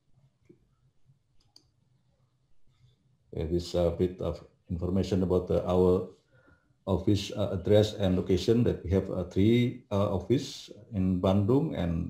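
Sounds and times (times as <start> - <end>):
faint clicks: 1.4 - 1.8.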